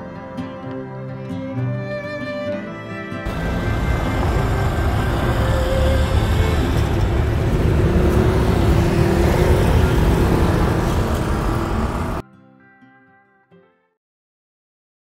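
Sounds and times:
cars driving past: 3.3s - 12.2s.

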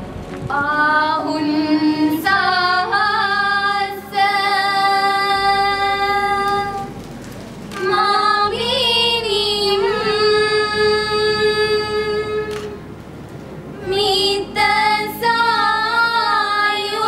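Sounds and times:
young women singing slow song: 0.5s - 7.0s, 7.8s - 12.8s, 13.8s - 17.0s.

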